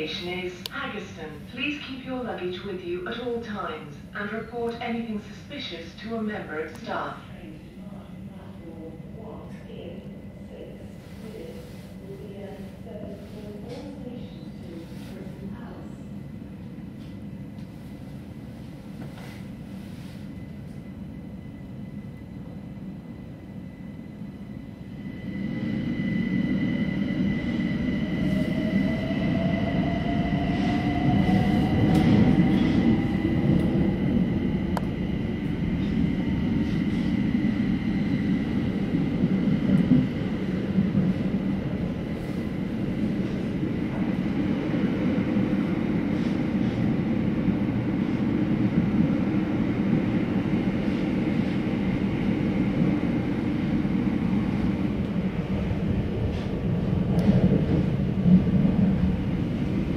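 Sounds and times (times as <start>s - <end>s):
rumble of wheels on rail: 0.0s - 59.9s.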